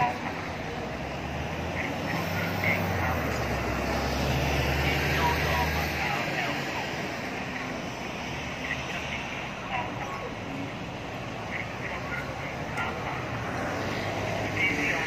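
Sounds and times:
background voices: 0:00.0 - 0:15.0
bus engine rumble: 0:00.0 - 0:15.0
street noise: 0:00.0 - 0:15.0.

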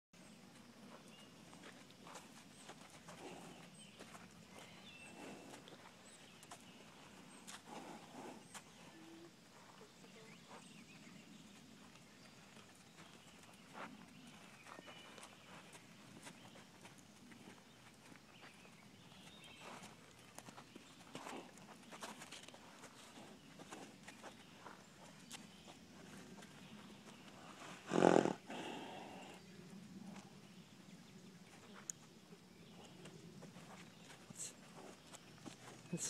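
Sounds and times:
faint footsteps on soft dirt: 0:00.2 - 0:36.0.

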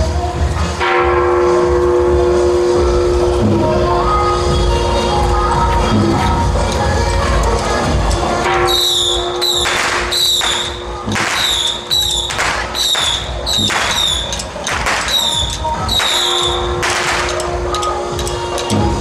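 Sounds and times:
rhythmic percussion strikes ringing: 0:00.1 - 0:19.0
steady held tone: 0:15.2 - 0:19.0.

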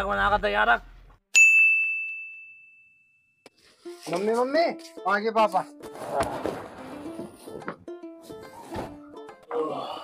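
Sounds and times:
bell-like ding: 0:01.4 - 0:03.5.

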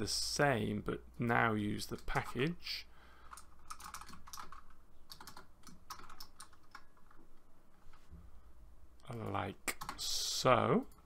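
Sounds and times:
computer keyboard typing: 0:03.2 - 0:07.2, 0:09.7 - 0:10.1.

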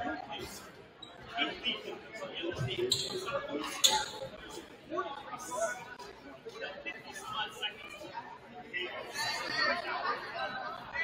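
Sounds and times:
echoing chatter of voices: 0:00.0 - 0:11.0.

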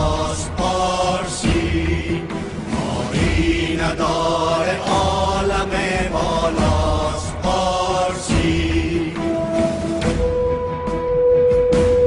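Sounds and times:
chant-like singing: 0:00.0 - 0:10.3
low beats: 0:00.0 - 0:12.0.

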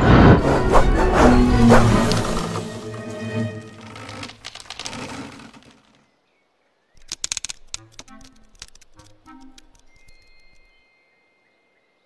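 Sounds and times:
sharp crackling clicks: 0:07.0 - 0:10.6.

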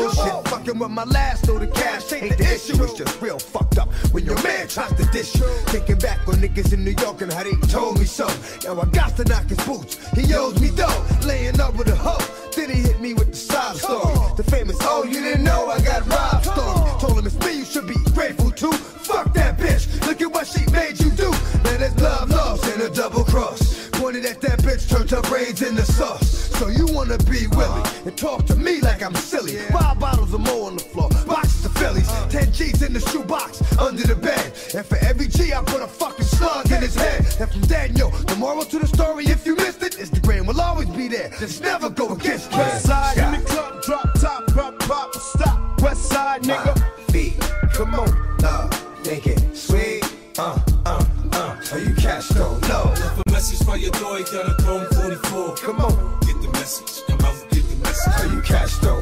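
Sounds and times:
rapping over a beat: 0:00.0 - 0:59.0
heavy pulsing bass: 0:01.1 - 0:01.8, 0:03.6 - 0:07.0, 0:08.8 - 0:09.6, 0:10.2 - 0:12.2, 0:14.1 - 0:14.8, 0:15.4 - 0:18.1, 0:19.2 - 0:22.6, 0:24.4 - 0:25.2, 0:25.9 - 0:27.9, 0:29.7 - 0:30.5, 0:31.1 - 0:33.1, 0:35.0 - 0:35.7, 0:36.7 - 0:38.3, 0:40.2 - 0:40.9, 0:42.6 - 0:43.6, 0:45.4 - 0:46.2, 0:47.1 - 0:48.8, 0:50.6 - 0:51.4, 0:52.3 - 0:54.0, 0:55.8 - 0:56.6, 0:57.6 - 0:59.0.

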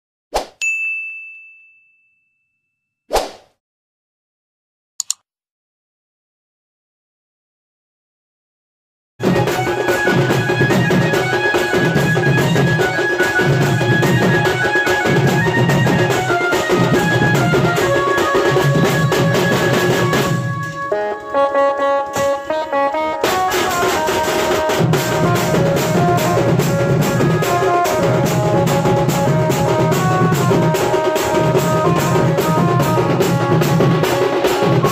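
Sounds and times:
bright bell-like ding: 0:00.6 - 0:02.9
barrel drums and cymbals: 0:09.2 - 0:20.9, 0:23.2 - 0:34.9
reedy wind instrument melody: 0:09.2 - 0:34.9.

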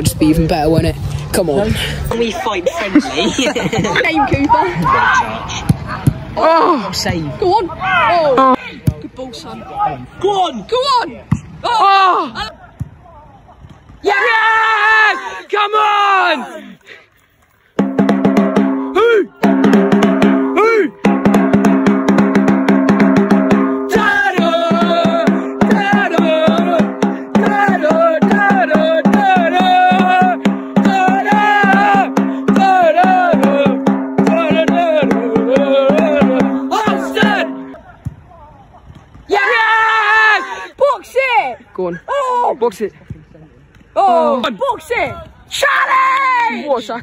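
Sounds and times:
people talking over one another: 0:00.0 - 0:16.8, 0:23.8 - 0:47.0
people laughing: 0:02.5 - 0:05.0
drum beaten rapidly: 0:17.8 - 0:37.8
people singing: 0:23.9 - 0:37.6
voices holding notes: 0:23.9 - 0:38.6.

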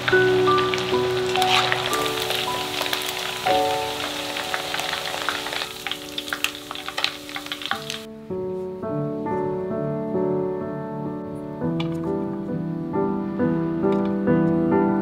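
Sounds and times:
beef deep-frying in oil: 0:00.0 - 0:08.1
oil popping and crackling: 0:00.0 - 0:08.1
soft piano music: 0:00.0 - 0:15.0.

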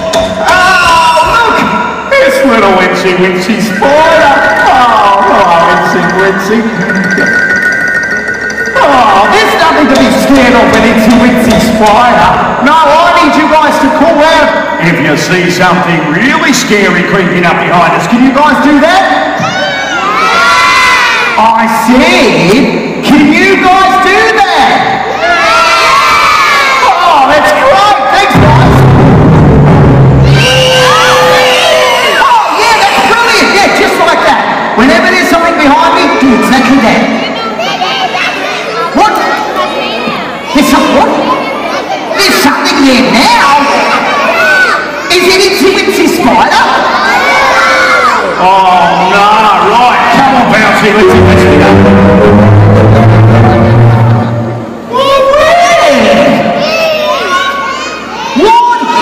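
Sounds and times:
children shouting together: 0:19.3 - 0:21.4, 0:25.0 - 0:27.0, 0:36.2 - 0:42.5, 0:43.5 - 0:45.2, 0:46.7 - 0:48.4, 0:56.4 - 0:59.0.

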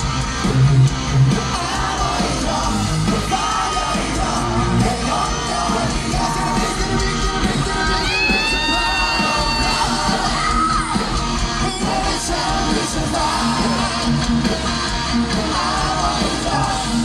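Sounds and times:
live rock band playing: 0:00.0 - 0:17.0
sung vocals: 0:01.2 - 0:17.0.

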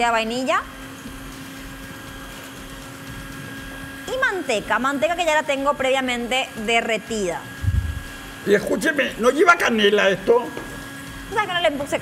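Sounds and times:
electric hand mixer whisking: 0:00.0 - 0:12.0.

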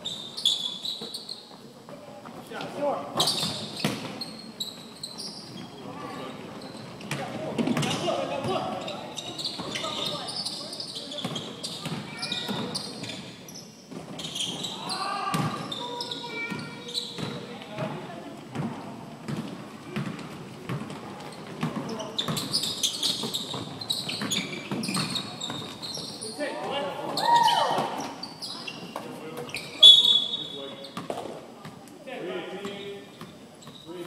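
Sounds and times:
sneakers squeaking on floor: 0:00.0 - 0:31.8, 0:32.6 - 0:34.0
basketball bouncing: 0:15.3 - 0:15.7, 0:18.6 - 0:25.7.

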